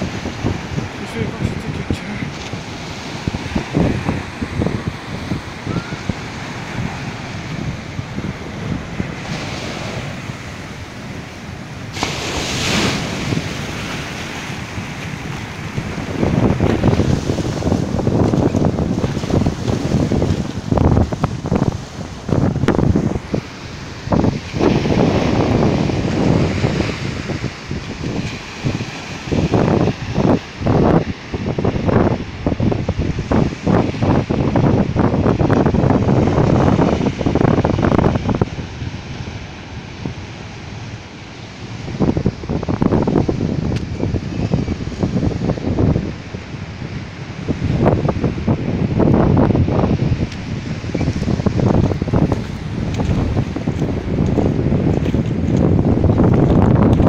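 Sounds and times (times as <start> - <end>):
ocean waves breaking: 0.0 - 57.0
wind buffeting microphone: 0.0 - 57.0.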